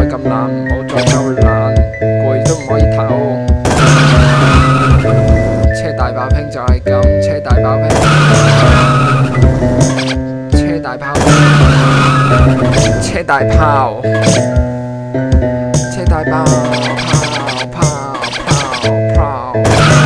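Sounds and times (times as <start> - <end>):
music with a steady beat: 0.0 - 20.0
car engine noise: 3.7 - 5.6, 8.0 - 10.1
tire squeal: 3.8 - 5.3, 8.0 - 10.2, 11.4 - 13.0.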